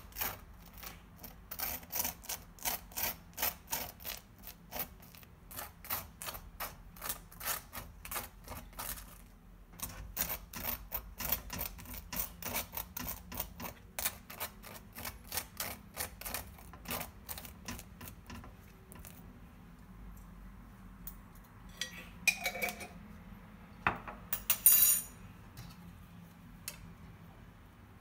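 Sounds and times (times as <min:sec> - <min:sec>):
spoon scraping dry toast: 0:00.0 - 0:19.3.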